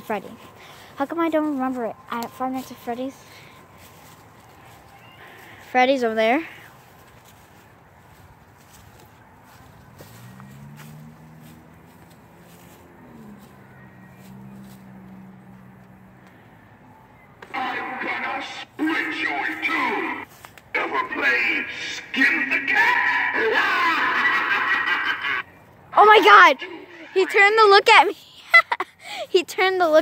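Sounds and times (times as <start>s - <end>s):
high-pitched voices: 17.4s - 30.0s.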